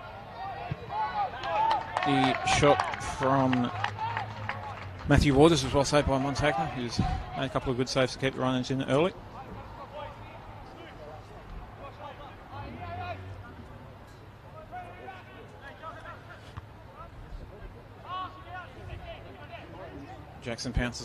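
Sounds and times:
loud shouts: 0:00.0 - 0:04.9, 0:05.8 - 0:07.6
open-air background noise: 0:00.0 - 0:21.0
players calling out: 0:00.1 - 0:13.8.

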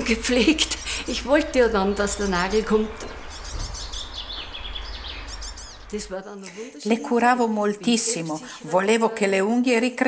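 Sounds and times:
low background rumble: 0:00.0 - 0:08.6
songbirds chirping: 0:00.0 - 0:09.4.

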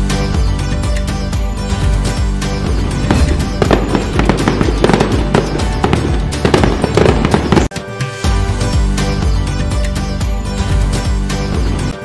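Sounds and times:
background music: 0:00.0 - 0:12.0
firecracker bangs and crackles: 0:03.0 - 0:07.7.

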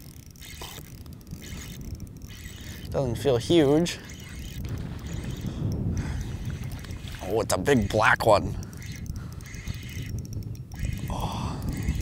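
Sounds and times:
fishing reel whirring: 0:00.0 - 0:12.0
wind and water rumble: 0:00.0 - 0:12.0.

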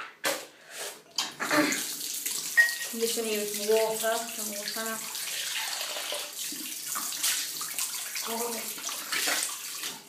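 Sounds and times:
tap water running into sink: 0:01.2 - 0:10.0.

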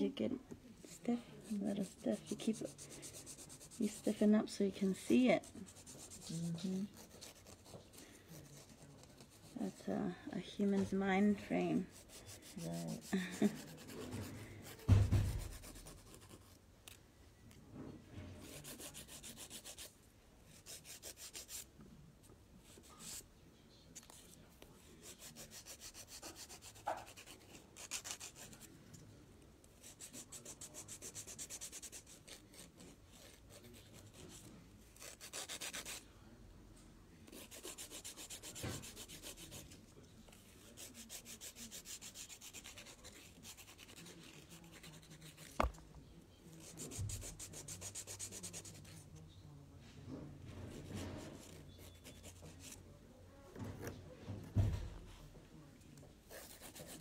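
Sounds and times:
nail file rasping on fingernails: 0:18.4 - 0:19.9, 0:25.1 - 0:28.6, 0:35.0 - 0:36.0, 0:37.3 - 0:39.5, 0:40.8 - 0:45.8.

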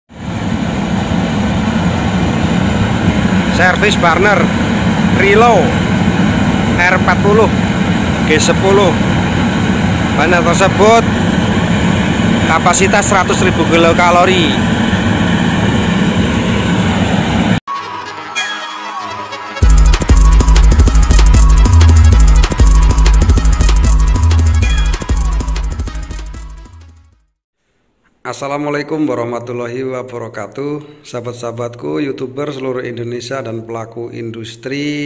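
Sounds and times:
oil burner roaring: 0:00.1 - 0:17.6, 0:19.6 - 0:26.0.

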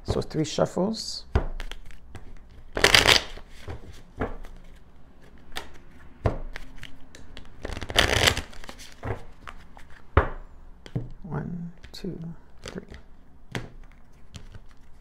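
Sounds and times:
cards shuffling by hand: 0:01.5 - 0:10.1, 0:12.6 - 0:15.0.

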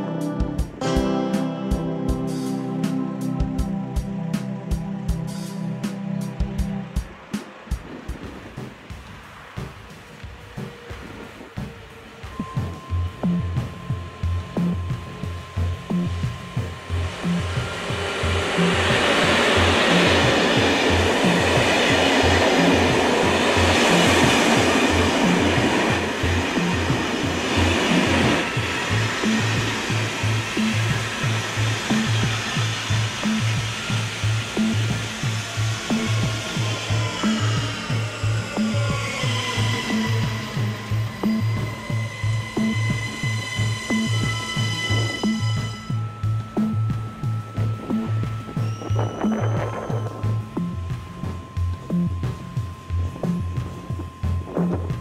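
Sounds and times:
background music with a beat: 0:00.0 - 0:55.0
train running past: 0:00.0 - 0:55.0.

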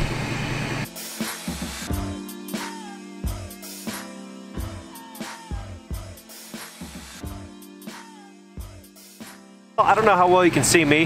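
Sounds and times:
music with drums and bass: 0:00.9 - 0:09.4.

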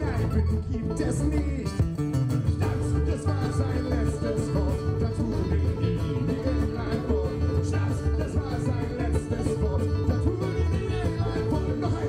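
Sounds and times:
mandolin: 0:00.0 - 0:12.0
rhythmic bass: 0:00.0 - 0:12.0
strummed acoustic guitars: 0:00.0 - 0:12.0.

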